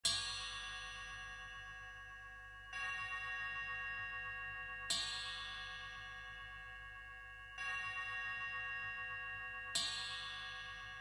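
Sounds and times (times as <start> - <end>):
bell-like metallic percussion tones: 0.0 - 11.0.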